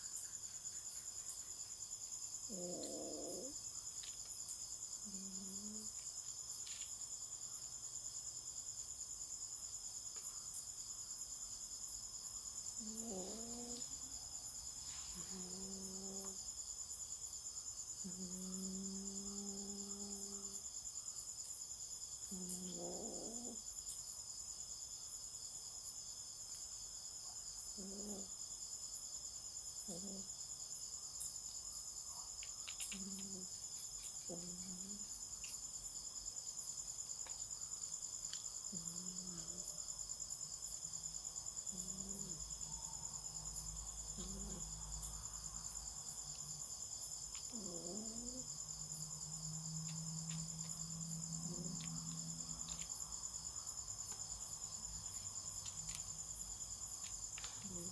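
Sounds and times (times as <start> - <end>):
crickets trilling: 0.0 - 57.9.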